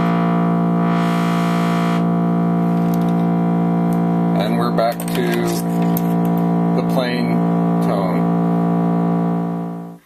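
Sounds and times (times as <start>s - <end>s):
low sawtooth synth tone: 0.0s - 10.0s.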